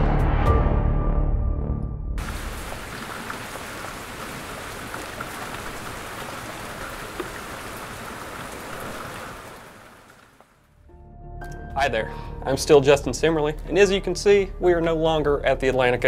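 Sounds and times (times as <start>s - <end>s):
heavy rain hissing: 2.2s - 10.6s
raindrop ticks: 2.2s - 10.7s.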